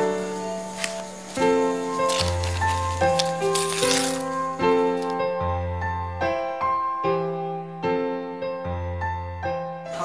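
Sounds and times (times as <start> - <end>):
background piano music: 0.0 - 10.0.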